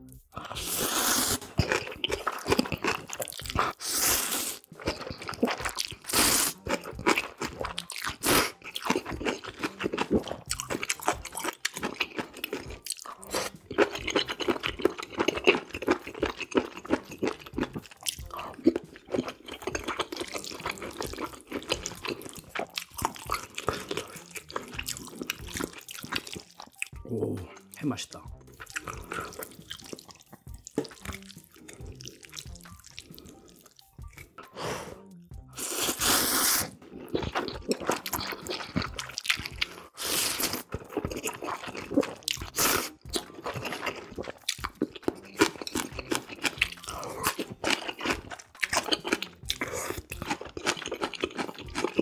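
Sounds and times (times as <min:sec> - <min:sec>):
wet chewing and crunching: 0:00.1 - 0:34.6, 0:35.3 - 0:52.0
noodle slurping: 0:00.4 - 0:17.4, 0:35.6 - 0:52.0.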